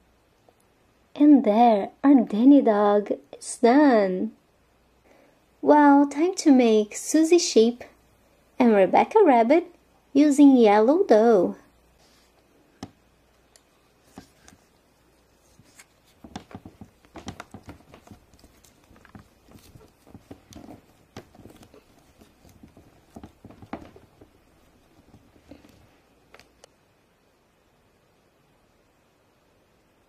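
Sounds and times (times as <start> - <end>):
hands working play dough: 11.2 - 26.7
soft taps and clicks on plastic: 15.5 - 26.7.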